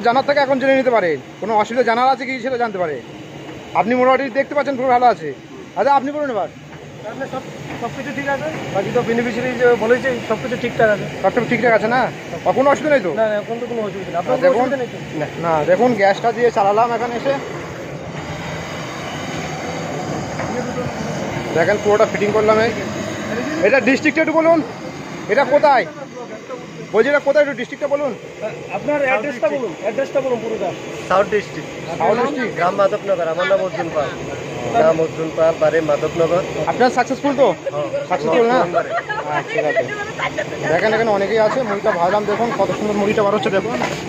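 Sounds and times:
low mechanical drone: 0:00.0 - 0:38.8
roasting machine humming: 0:00.0 - 0:44.0
man speaking: 0:20.4 - 0:39.9, 0:40.6 - 0:44.0.

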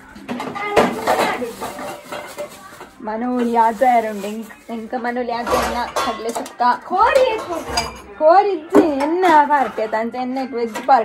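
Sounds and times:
steel utensils clinking: 0:00.5 - 0:08.2
woman's voice: 0:03.0 - 0:11.0.

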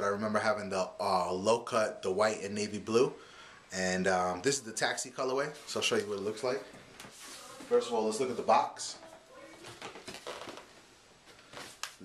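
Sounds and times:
faint rustles: 0:05.5 - 0:08.0.

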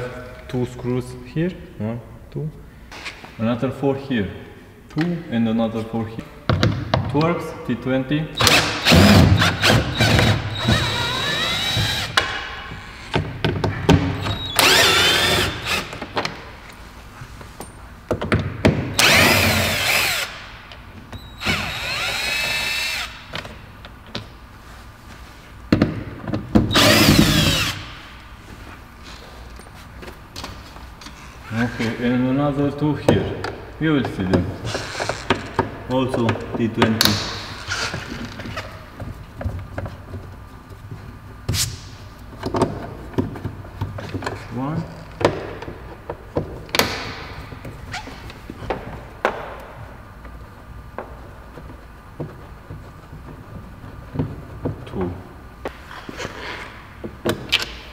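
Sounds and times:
cordless drill motor whining: 0:08.8 - 0:12.1, 0:14.6 - 0:15.9, 0:19.0 - 0:20.3, 0:21.4 - 0:23.1, 0:26.7 - 0:27.8.

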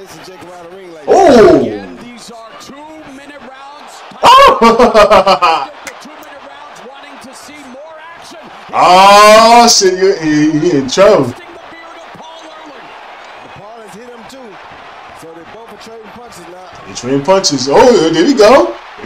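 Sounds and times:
man's loud exclamation: 0:01.1 - 0:02.0, 0:04.2 - 0:05.8, 0:08.7 - 0:10.8.

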